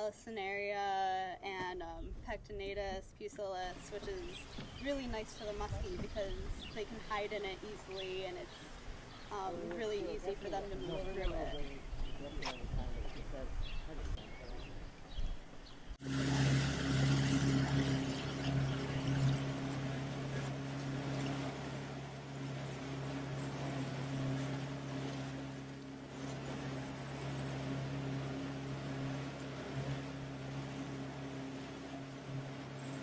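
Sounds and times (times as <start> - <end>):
outboard motor hum: 0.0 - 33.0.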